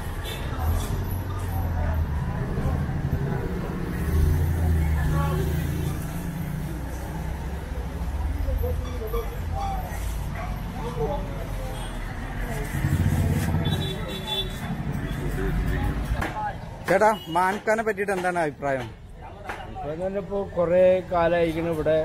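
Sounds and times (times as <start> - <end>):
road traffic rumble: 0.0 - 22.0.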